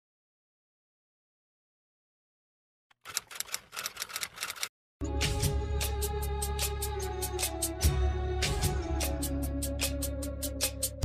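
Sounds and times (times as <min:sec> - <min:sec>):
typewriter keys clacking: 0:02.9 - 0:04.7.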